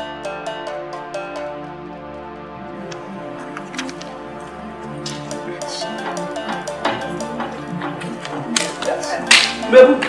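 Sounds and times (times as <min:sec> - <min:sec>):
film soundtrack music: 0:00.0 - 0:10.0
sharp crack-like hits: 0:05.0 - 0:09.6.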